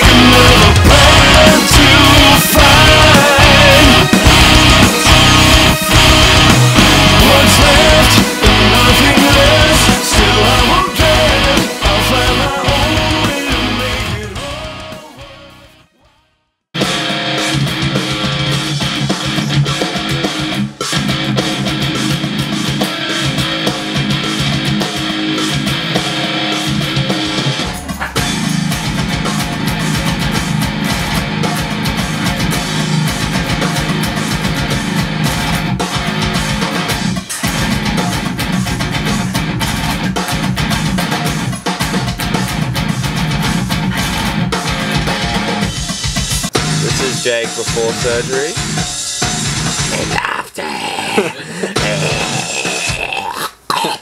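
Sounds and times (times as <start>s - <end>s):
drum kit: 0.0s - 15.4s, 16.8s - 54.0s
heavy metal guitar music: 0.0s - 15.8s, 16.8s - 54.0s.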